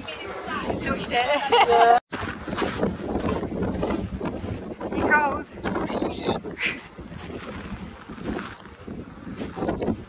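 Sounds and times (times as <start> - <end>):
wind buffeting microphone: 0.0 - 10.0
person laughing: 1.3 - 2.0.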